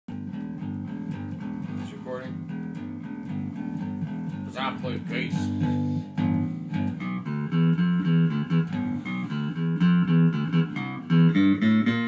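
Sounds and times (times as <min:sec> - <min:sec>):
electric bass guitar notes: 0:00.1 - 0:12.0.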